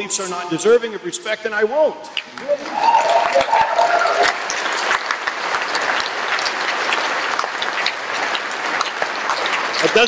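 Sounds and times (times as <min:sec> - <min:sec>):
large crowd clapping: 0:02.3 - 0:10.0.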